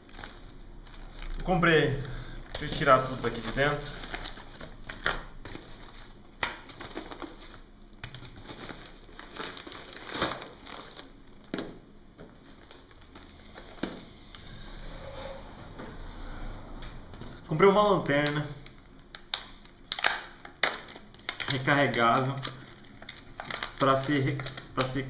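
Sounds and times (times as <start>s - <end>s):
plastic packaging crinkling: 0.0s - 14.1s, 17.8s - 25.0s.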